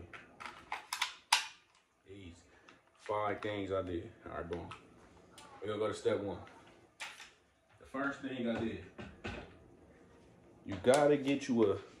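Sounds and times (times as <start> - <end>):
pistol handling clicks and rattles: 0.4 - 1.9.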